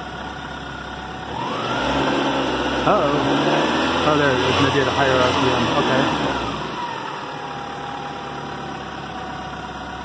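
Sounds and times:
car engine idling and revving: 0.0 - 10.0.

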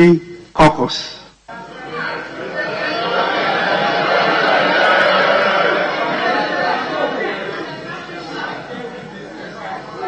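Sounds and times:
chatter of many voices: 1.4 - 10.0.

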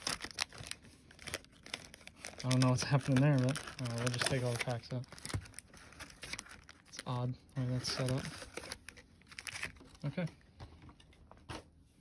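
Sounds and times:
foil card packs rustling: 0.0 - 10.3.

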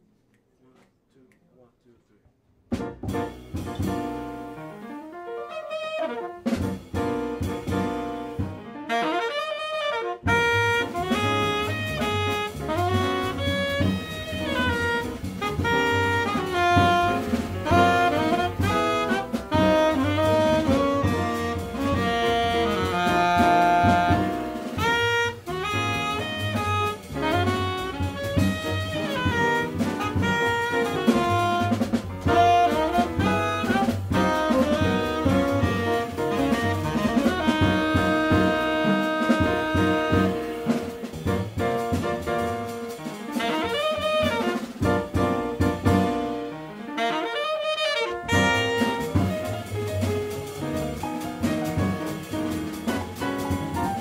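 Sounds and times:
jazz band playing: 2.7 - 54.0
tenor saxophone melody: 5.0 - 6.6, 8.7 - 41.5, 42.2 - 51.0.

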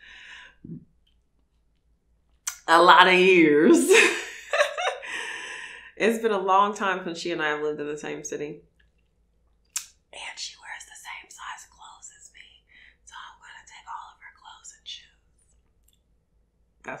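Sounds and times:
woman whispering: 10.2 - 15.1.

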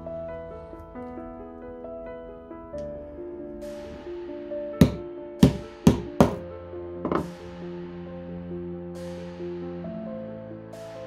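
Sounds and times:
background music: 0.0 - 11.0
hammer tapping metal: 4.8 - 6.4.

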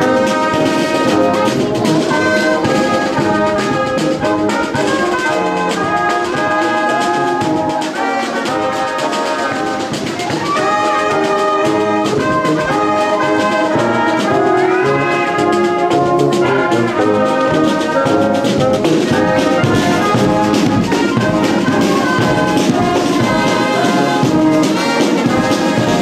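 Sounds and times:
marching brass band playing: 0.0 - 26.0
steady drum beats: 0.0 - 26.0.

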